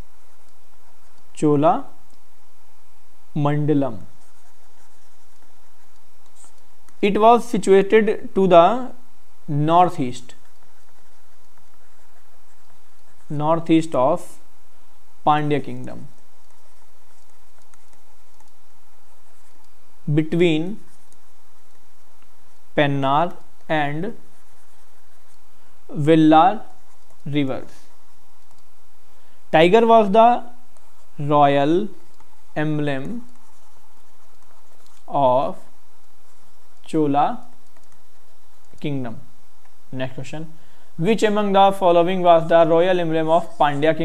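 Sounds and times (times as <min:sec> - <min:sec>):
stylus scratching on tablet: 0:00.0 - 0:02.6, 0:03.3 - 0:14.6, 0:15.2 - 0:40.5, 0:41.1 - 0:44.0
steady background hiss: 0:00.0 - 0:44.0
steady low hum: 0:00.0 - 0:44.0.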